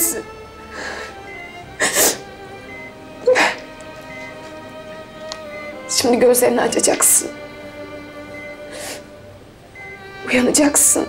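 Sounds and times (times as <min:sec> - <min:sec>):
soft background music: 0:00.0 - 0:11.0
woman's tearful breath: 0:00.7 - 0:01.2.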